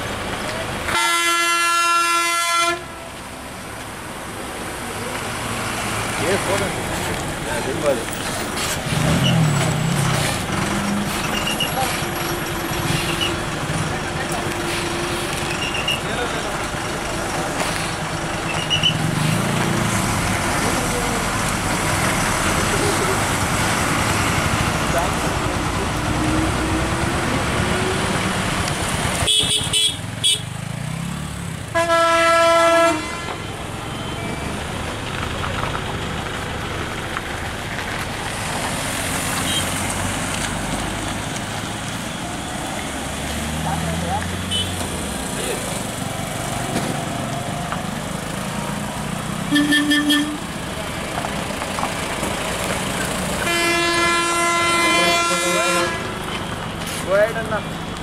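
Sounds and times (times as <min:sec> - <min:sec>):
bus engine running: 0:00.0 - 0:02.0, 0:02.7 - 0:58.0
road traffic: 0:00.0 - 0:58.0
bus horn: 0:00.9 - 0:03.1, 0:29.2 - 0:30.5, 0:31.7 - 0:34.3, 0:39.4 - 0:39.8, 0:44.5 - 0:44.8, 0:49.5 - 0:50.6, 0:53.4 - 0:56.3.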